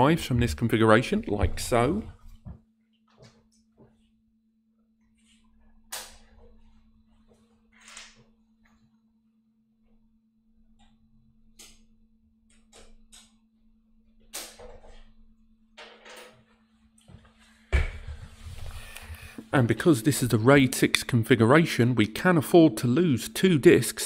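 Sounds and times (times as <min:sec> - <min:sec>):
steady low hum: 0:00.0 - 0:15.8, 0:16.4 - 0:24.0.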